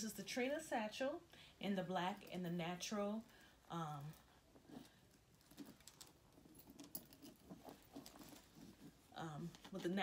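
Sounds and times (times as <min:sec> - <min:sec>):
handbag clicks and rustles: 0:04.0 - 0:10.0.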